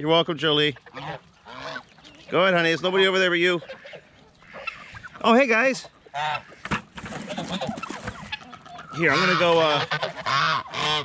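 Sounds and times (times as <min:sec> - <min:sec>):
geese honking: 0:00.5 - 0:11.0.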